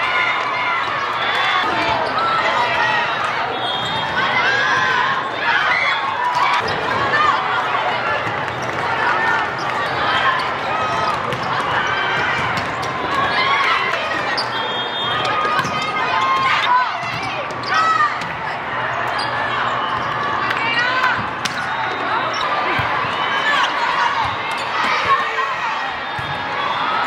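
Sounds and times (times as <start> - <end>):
shouts and chatter in a hall: 0.0 - 27.0
volleyballs hitting the floor: 10.4 - 14.3, 15.2 - 18.4, 19.9 - 21.7.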